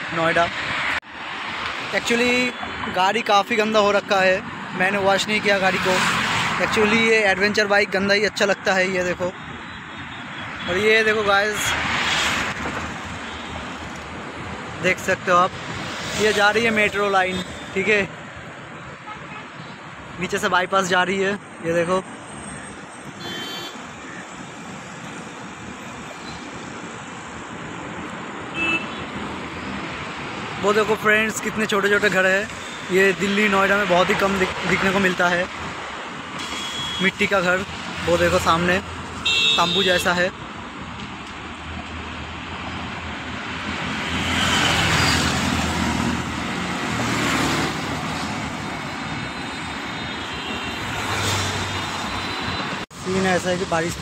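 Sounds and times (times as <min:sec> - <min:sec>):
road traffic rushing: 0:00.0 - 0:54.0
car horn toots: 0:23.2 - 0:23.8, 0:28.5 - 0:29.0, 0:36.4 - 0:37.2, 0:39.2 - 0:39.9.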